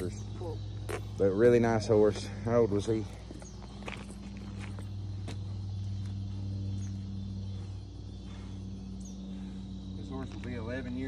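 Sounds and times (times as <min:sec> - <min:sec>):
crickets chirring: 0:00.0 - 0:11.0
footsteps on pavement: 0:00.0 - 0:11.0
low mechanical hum: 0:00.0 - 0:11.0.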